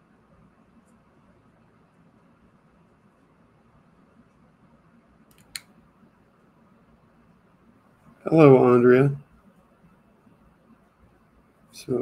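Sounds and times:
sharp computer click: 0:05.3 - 0:05.8.

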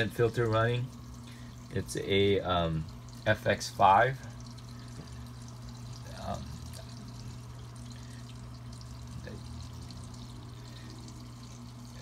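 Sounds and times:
aquarium filter humming: 0:00.0 - 0:12.0
water trickling and pouring: 0:00.0 - 0:12.0.

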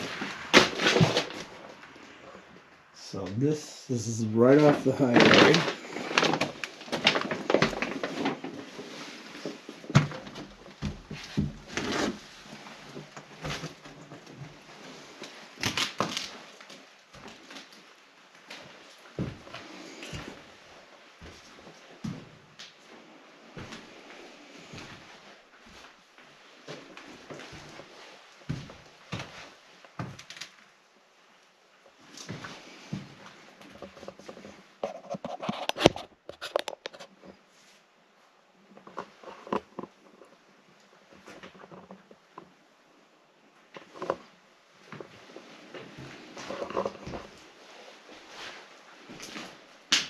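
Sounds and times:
footsteps on debris and boards: 0:00.0 - 0:01.8, 0:04.7 - 0:20.6.

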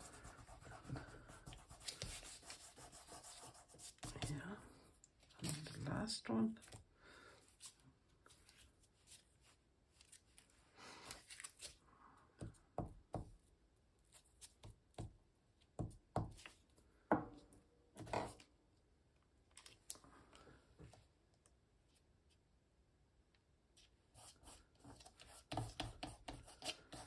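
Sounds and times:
glue stick rubbing on paper: 0:00.0 - 0:04.4
paper rustling: 0:07.6 - 0:11.8.

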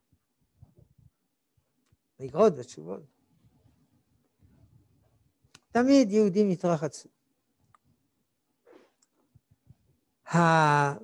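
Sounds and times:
faint soft clicks: 0:07.6 - 0:07.9.

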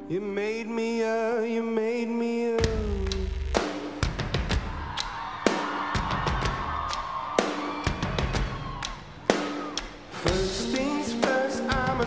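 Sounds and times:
sharp drum hits: 0:02.6 - 0:06.8
live rock band playing: 0:02.6 - 0:12.0.

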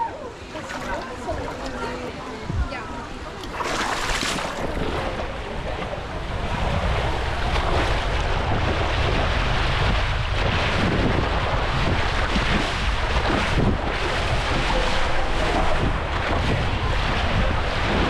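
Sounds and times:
water rushing and splashing: 0:00.0 - 0:18.0
wind on microphone: 0:00.0 - 0:18.0.

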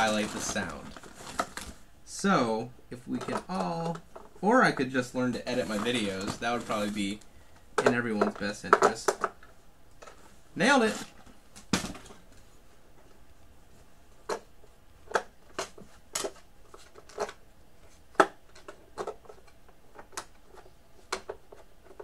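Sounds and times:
plastic clicks and knocks: 0:07.8 - 0:10.2, 0:18.1 - 0:22.0.

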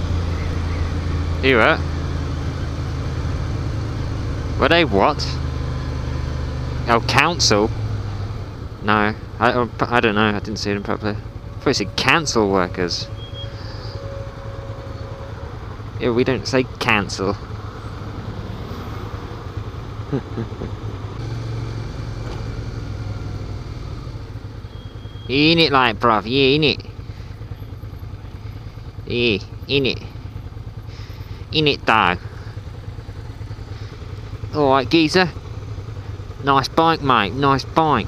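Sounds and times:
motorcycle engine idling: 0:00.0 - 0:38.0.

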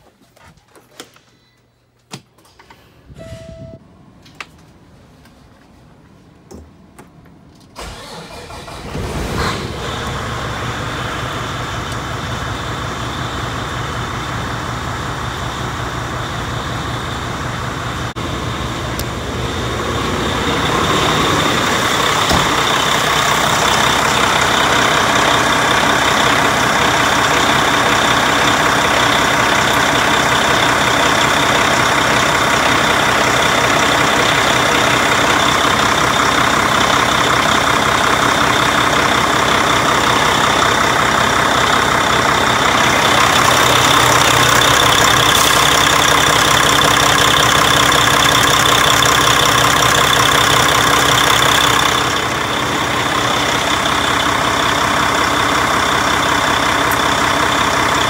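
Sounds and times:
diesel truck engine starting and idling: 0:07.3 - 0:58.0.

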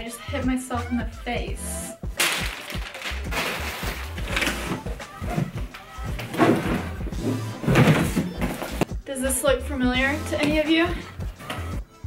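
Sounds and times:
background music with bass: 0:00.0 - 0:12.0.

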